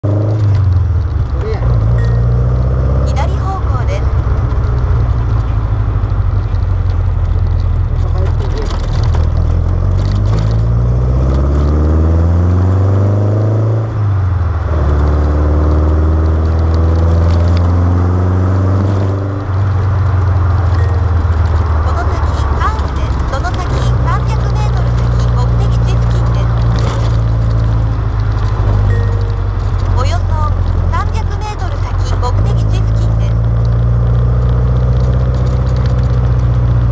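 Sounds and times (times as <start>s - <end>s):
car engine revving: 0.0s - 36.9s.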